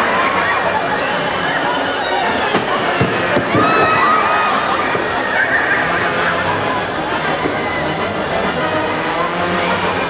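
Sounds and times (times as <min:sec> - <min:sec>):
audience laughing and calling out: 0:00.0 - 0:10.0.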